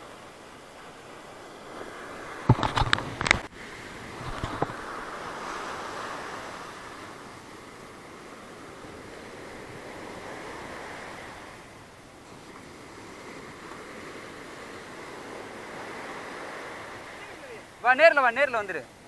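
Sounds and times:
surf breaking on beach: 0:00.0 - 0:19.0.

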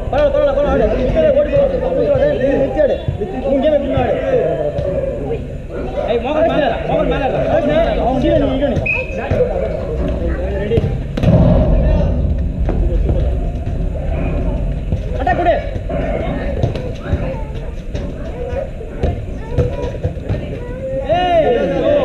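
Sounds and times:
low rumble: 0:09.8 - 0:17.5
players shouting: 0:18.4 - 0:22.0.

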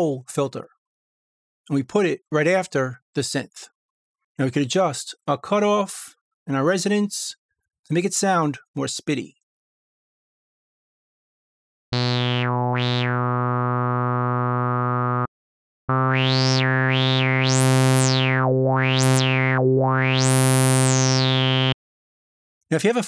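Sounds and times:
sawtooth synth note with filter sweep: 0:12.0 - 0:15.3, 0:15.9 - 0:21.8.

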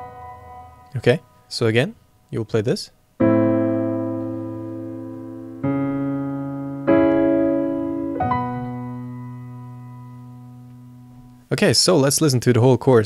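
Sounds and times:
piano chords ringing: 0:00.0 - 0:01.9, 0:03.1 - 0:11.5.

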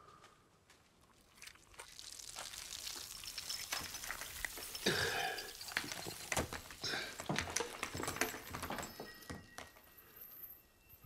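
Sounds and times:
brittle lump crunching in hands: 0:01.0 - 0:07.8.

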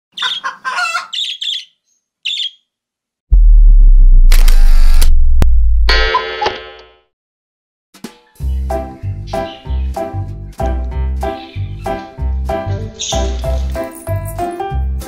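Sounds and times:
bird-like chirps: 0:00.1 - 0:02.7, 0:09.2 - 0:10.0, 0:13.0 - 0:13.4
deep bass boom: 0:03.3 - 0:06.1
sharp click: 0:04.3 - 0:05.2.

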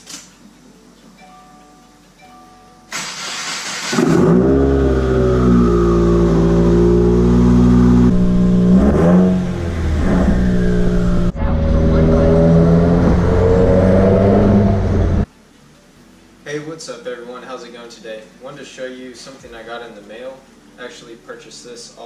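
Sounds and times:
car engine starting and revving: 0:02.9 - 0:15.3.

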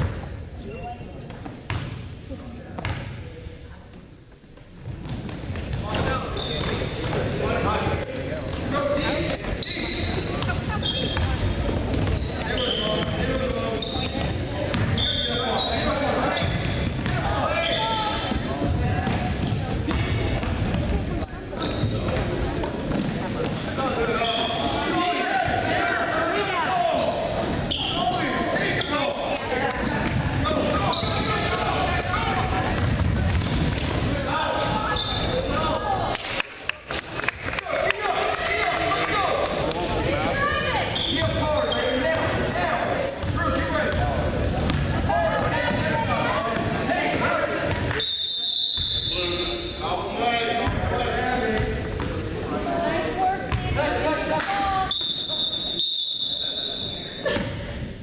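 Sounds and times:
sneaker squeaks: 0:00.0 - 0:02.0, 0:04.8 - 0:36.2, 0:40.3 - 0:49.9, 0:50.6 - 0:52.2, 0:54.5 - 0:57.7
spectators' voices: 0:04.8 - 0:58.0.

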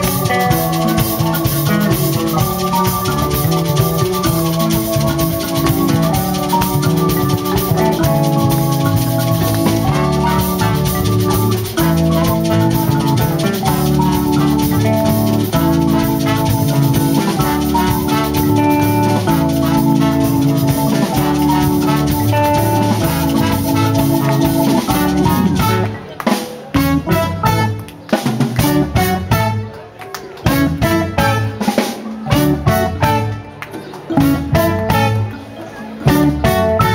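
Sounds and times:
mbira: 0:00.0 - 0:29.7
live dance band playing: 0:00.0 - 0:36.9.

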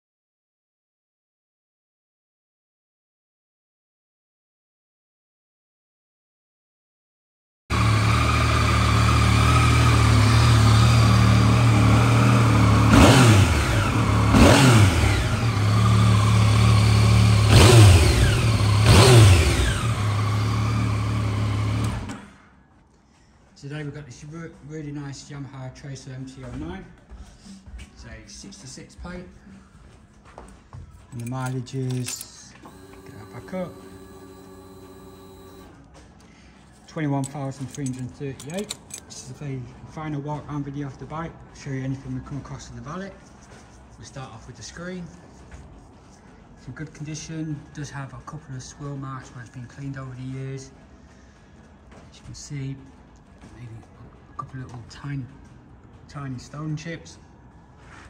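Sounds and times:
motorcycle engine idling and revving: 0:07.7 - 0:22.3, 0:32.7 - 0:35.6
fuel pump humming: 0:31.9 - 0:35.7.

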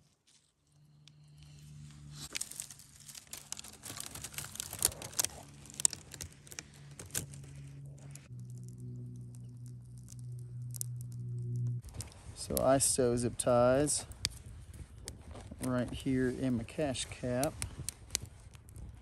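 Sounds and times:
low hum: 0:00.0 - 0:15.6
twigs crackling in fire: 0:00.0 - 0:19.0.

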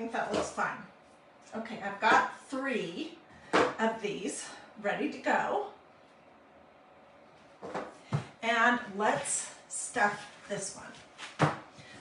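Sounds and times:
woman talking: 0:00.0 - 0:05.8, 0:08.4 - 0:11.0.

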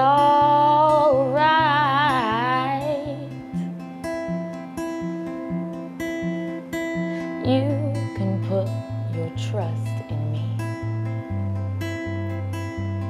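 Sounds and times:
woman singing: 0:00.0 - 0:03.6, 0:07.2 - 0:10.6
acoustic guitar chords: 0:00.0 - 0:13.0.

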